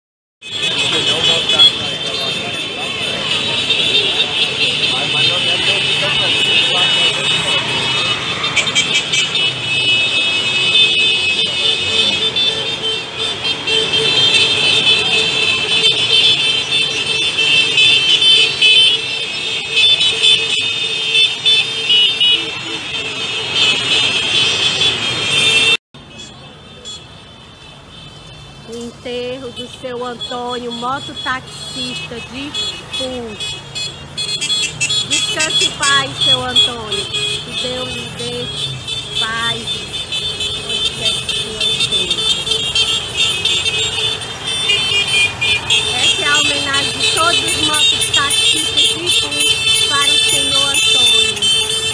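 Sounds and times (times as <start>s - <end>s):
motorcycle horns honking: 0.4s - 51.9s
street sound: 0.4s - 51.9s
motorcycle engines running: 32.9s - 51.9s.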